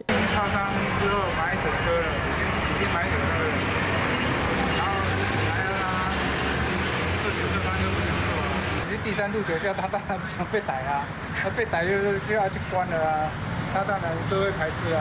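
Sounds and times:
street traffic noise: 0.0s - 15.0s.

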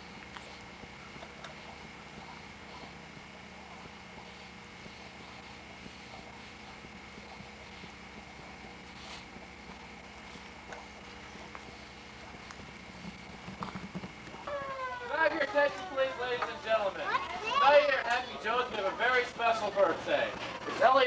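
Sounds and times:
tape hiss and hum: 0.0s - 21.0s.

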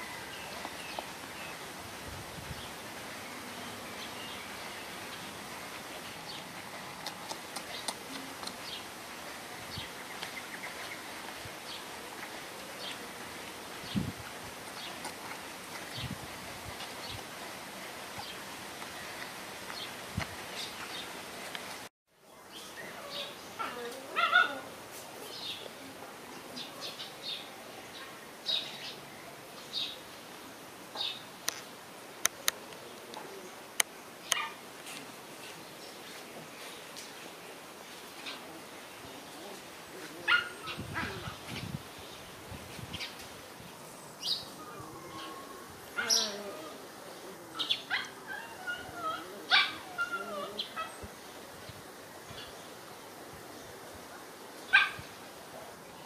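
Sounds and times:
puppies whining: 44.6s - 50.9s
puppies yelping and barking: 44.6s - 50.9s.

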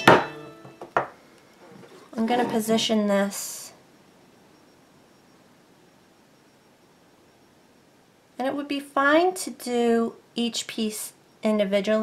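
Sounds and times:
knocks on hard work surface: 0.0s - 1.2s.

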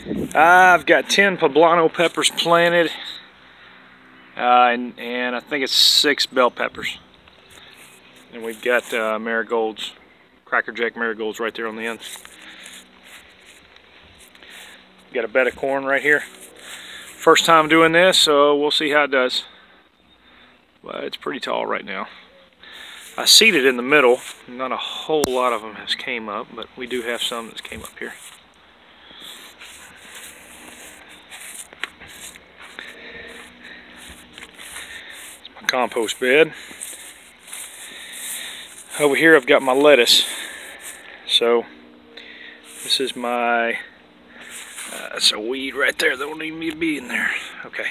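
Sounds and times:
faint steady hum: 0.0s - 47.9s
footsteps on grass: 7.4s - 9.2s, 11.7s - 18.0s, 22.7s - 25.8s, 26.4s - 41.3s, 42.6s - 43.6s, 44.3s - 47.5s
light rustling: 26.6s - 41.2s.

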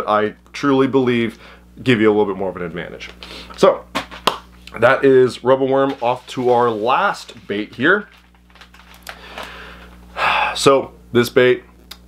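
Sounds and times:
low electrical hum: 0.0s - 12.0s
faint clicks and rustles: 7.4s - 10.0s.

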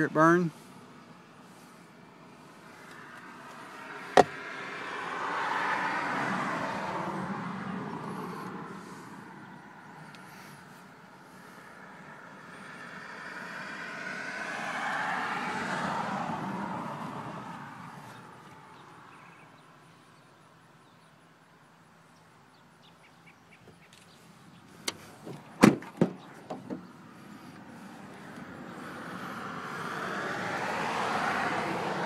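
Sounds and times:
vehicles passing by: 0.0s - 32.0s.

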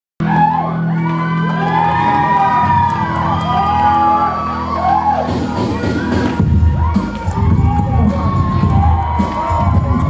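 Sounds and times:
audience cheering and whooping: 0.2s - 10.0s
music with steady low tone: 0.2s - 10.0s.

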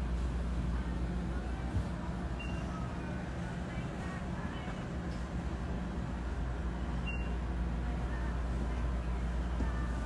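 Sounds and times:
shop ambience hum: 0.0s - 10.0s.

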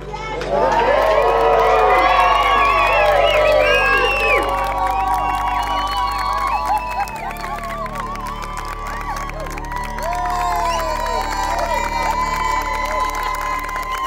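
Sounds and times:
background music: 0.0s - 14.0s
crowd cheering and whooping: 0.2s - 14.0s.

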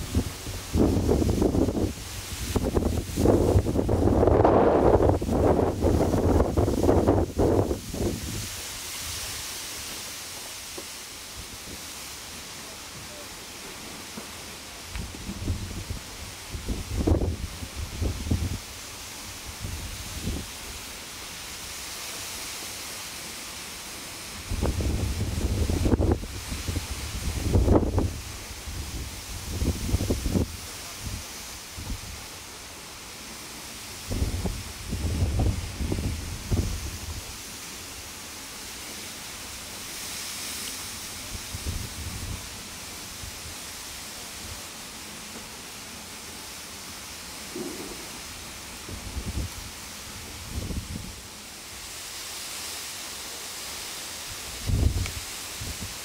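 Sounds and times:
wind buffeting microphone: 0.0s - 8.6s, 15.0s - 18.7s, 24.5s - 32.2s, 34.0s - 37.4s, 48.8s - 51.2s, 54.6s - 55.9s
steady outdoor hiss: 0.0s - 56.0s.

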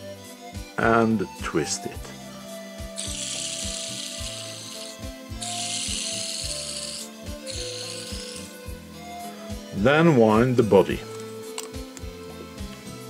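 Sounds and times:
soft background music: 0.0s - 13.0s
dry hissing rubs: 3.0s - 8.6s.

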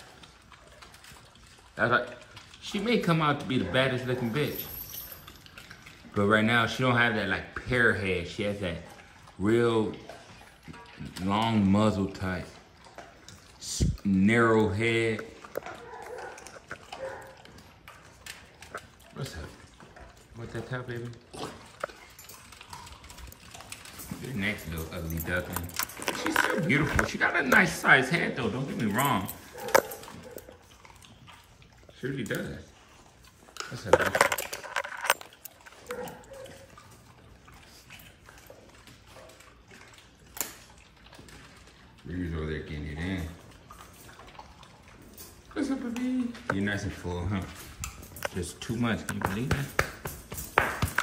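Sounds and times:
puppy sounds: 0.0s - 51.0s.

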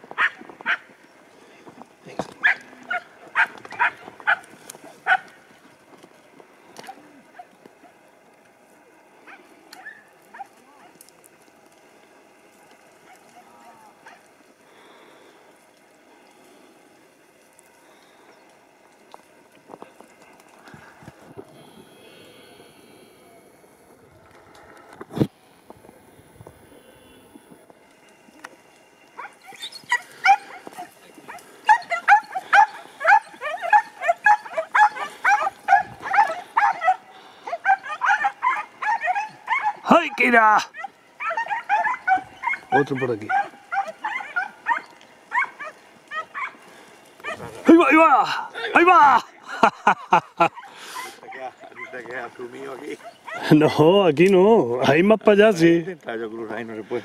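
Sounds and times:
dogs yelping barks: 0.1s - 1.0s, 2.4s - 5.5s, 9.2s - 11.0s, 29.1s - 48.0s, 49.8s - 53.8s.

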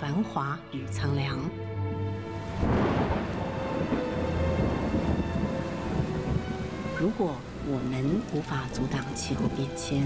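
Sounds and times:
thunderstorm with heavy rain: 2.4s - 10.0s.

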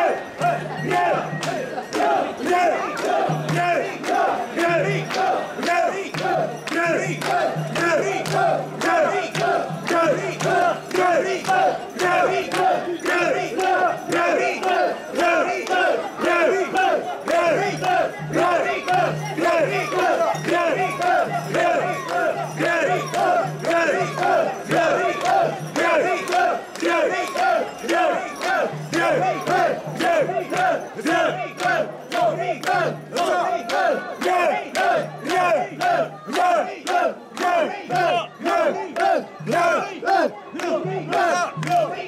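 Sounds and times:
crowd shouting rhythmic chant: 0.0s - 42.0s.

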